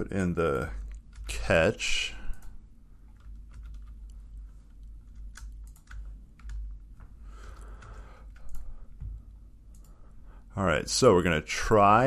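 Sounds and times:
computer keyboard typing: 0:00.6 - 0:10.0.

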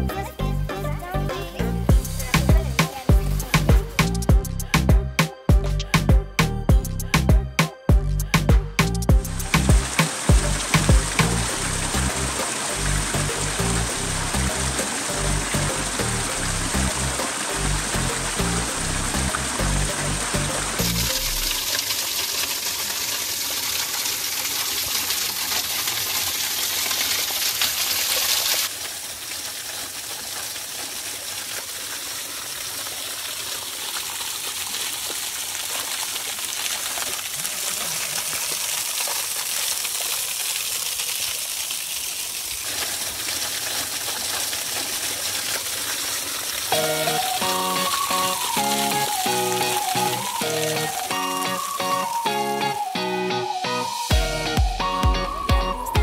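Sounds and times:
music: 0:00.0 - 0:21.6, 0:46.7 - 0:56.0
water splashing over rock: 0:09.4 - 0:51.2.

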